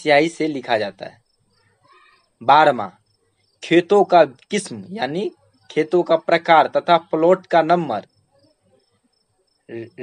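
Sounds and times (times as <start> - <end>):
high-pitched insect chirping: 0.0 - 10.0.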